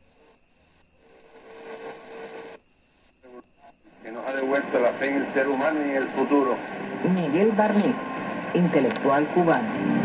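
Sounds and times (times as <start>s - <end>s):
weak radio signal bursts: 0.0s - 10.0s
radio static: 0.1s - 9.8s.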